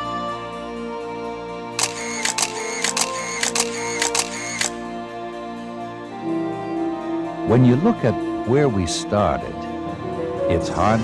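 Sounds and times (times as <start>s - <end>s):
soft background music: 0.0s - 11.0s
camera shutter clicks: 1.8s - 4.8s.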